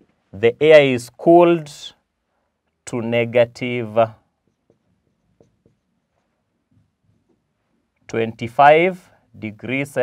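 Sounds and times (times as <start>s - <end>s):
marker writing on whiteboard: 4.3s - 7.9s.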